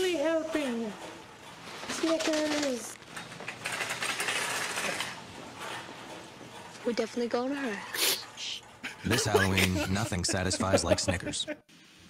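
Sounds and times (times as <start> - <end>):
shopping cart rattling: 0.0 - 7.6.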